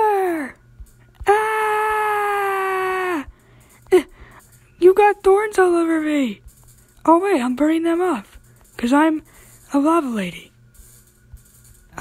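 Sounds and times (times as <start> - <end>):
girl crying aaah: 1.2 - 3.3.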